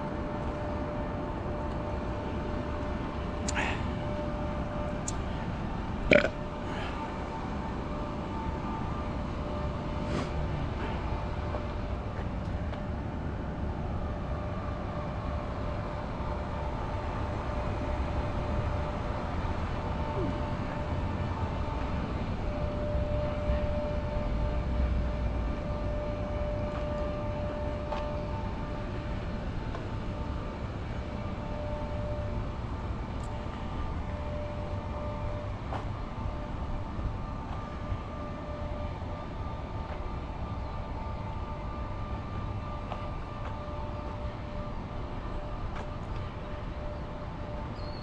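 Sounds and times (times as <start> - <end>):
distant street traffic rumble: 0.0 - 48.0
faint hum: 0.0 - 48.0.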